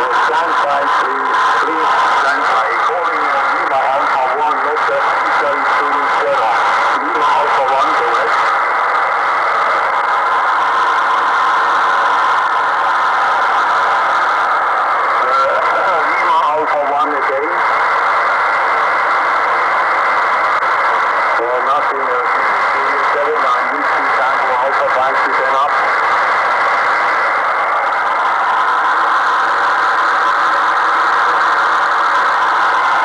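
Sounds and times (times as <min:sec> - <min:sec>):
weak radio voice: 0:00.0 - 0:09.1, 0:15.1 - 0:17.8, 0:21.2 - 0:26.1
radio band noise hiss: 0:00.0 - 0:33.0.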